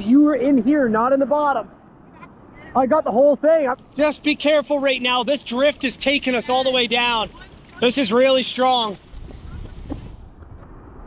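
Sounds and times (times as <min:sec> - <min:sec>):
wind buffeting microphone: 0:03.8 - 0:11.0.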